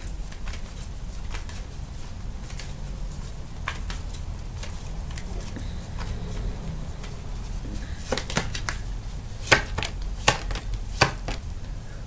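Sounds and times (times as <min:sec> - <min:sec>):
cards being shuffled: 0:00.0 - 0:11.6
card slaps: 0:08.0 - 0:08.8, 0:09.4 - 0:11.5.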